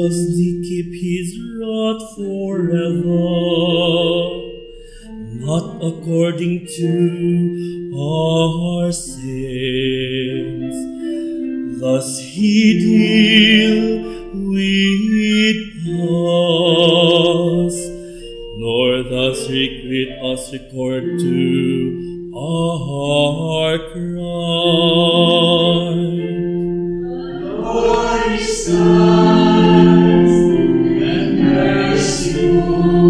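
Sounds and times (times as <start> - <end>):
man chanting a psalm: 0.0 - 4.4, 5.1 - 10.9, 11.8 - 26.3
man singing with vibrato: 0.0 - 33.0
sustained accompanying chords: 0.0 - 33.0.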